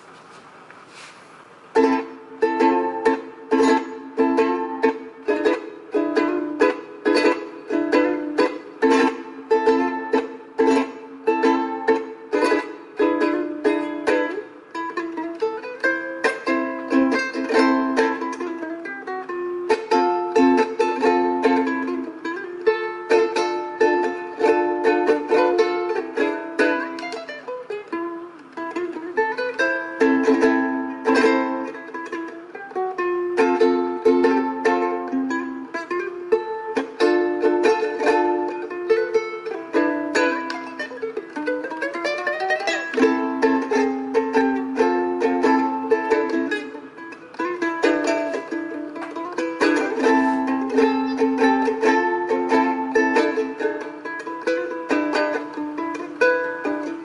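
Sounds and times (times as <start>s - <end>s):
ukulele strumming and plucking: 0.0s - 57.0s.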